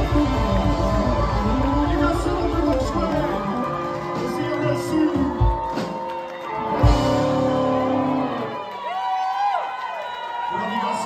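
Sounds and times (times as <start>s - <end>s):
live rock band: 0.0s - 8.8s
crowd cheering and whooping: 0.0s - 11.0s.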